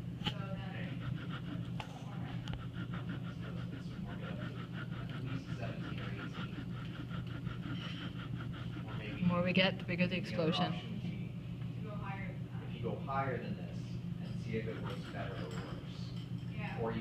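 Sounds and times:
steady low hum: 0:00.0 - 0:17.0
faint voices: 0:00.3 - 0:12.5.

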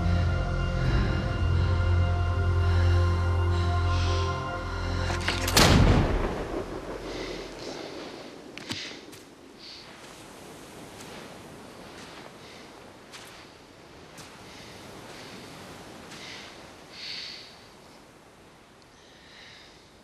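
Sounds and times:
music: 0:00.0 - 0:05.6
musket shot with echo: 0:05.3 - 0:07.8
faint clicks: 0:08.5 - 0:09.3.

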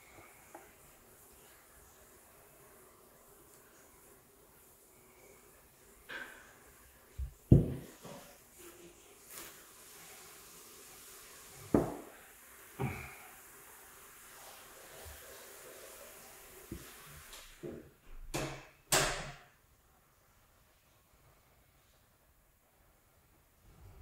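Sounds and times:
objects knocking on hard surface: 0:07.2 - 0:08.2, 0:11.7 - 0:12.1.

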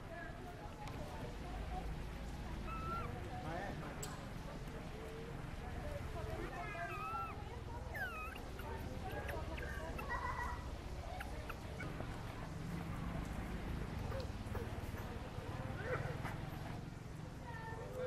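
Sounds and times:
macaque squeaks and whimpers: 0:02.6 - 0:03.3, 0:06.5 - 0:12.5, 0:14.0 - 0:15.2.

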